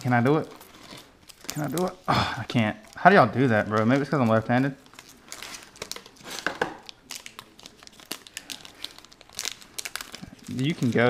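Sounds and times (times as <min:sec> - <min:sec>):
foil wrapper crinkling and tearing: 0:00.0 - 0:11.0.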